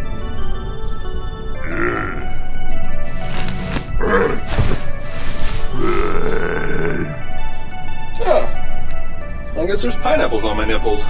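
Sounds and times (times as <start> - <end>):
background music: 0.0 - 11.0
person groaning like a zombie: 1.6 - 2.4, 4.0 - 4.6, 5.7 - 7.2.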